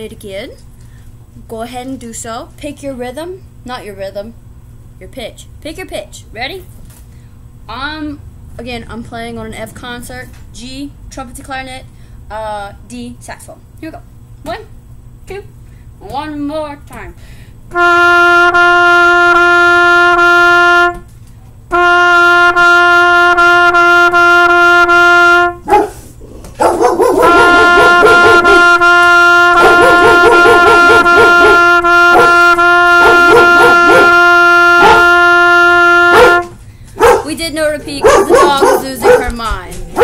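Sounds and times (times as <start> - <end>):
trumpet playing repeated note: 17.7 - 25.8, 27.0 - 37.2
dog barking: 25.6 - 28.8, 29.6 - 32.4, 33.0 - 34.2, 34.8 - 35.1, 36.1 - 37.3, 37.9 - 40.0.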